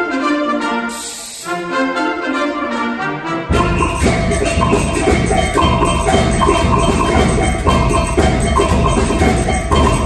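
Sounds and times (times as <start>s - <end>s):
concert band playing: 0.9s - 1.6s, 3.5s - 10.0s.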